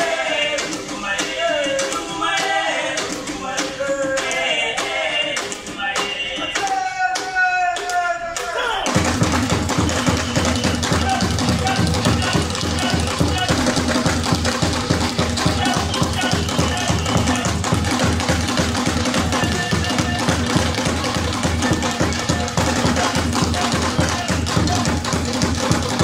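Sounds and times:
hand drums playing fast rhythm: 0.0s - 6.8s, 8.8s - 26.0s.

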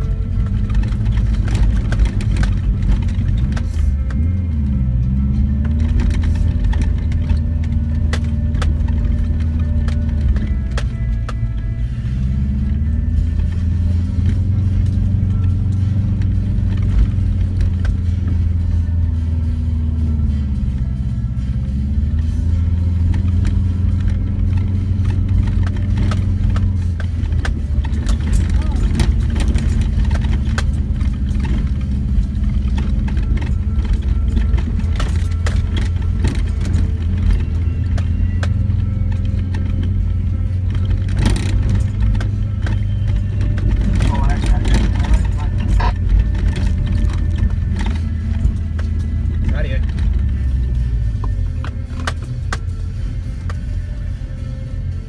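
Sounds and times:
car engine drone from inside cabin: 0.0s - 55.0s
rattles and knocks: 0.0s - 55.0s.

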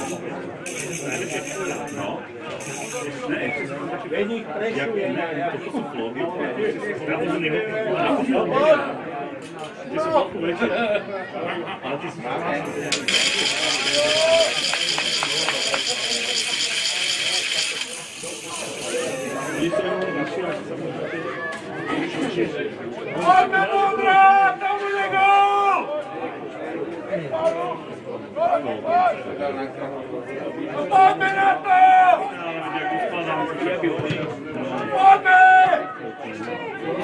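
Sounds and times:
men chatting: 0.0s - 35.7s
faint voices: 0.0s - 37.0s.

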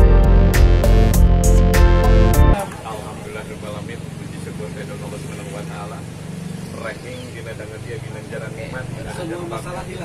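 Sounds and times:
motorcycle engine humming: 0.0s - 10.0s.

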